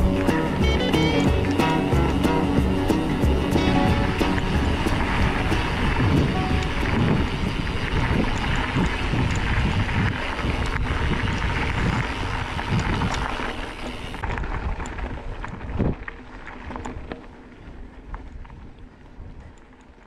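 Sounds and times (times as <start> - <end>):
background music: 0.0 - 7.2
bike tyres rolling over dirt: 0.0 - 20.0
wind buffeting microphone: 0.0 - 20.0.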